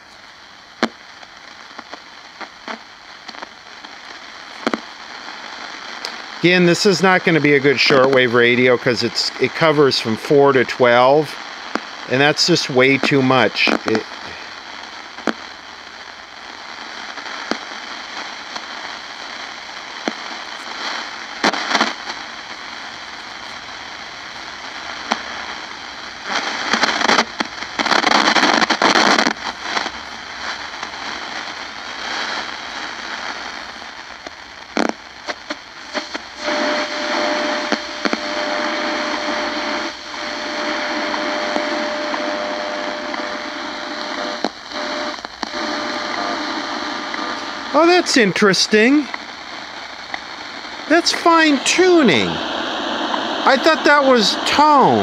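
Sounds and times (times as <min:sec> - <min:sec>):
radio static hiss and crackle: 0:00.0 - 0:55.0
carrier whistle tone: 0:36.0 - 0:47.0.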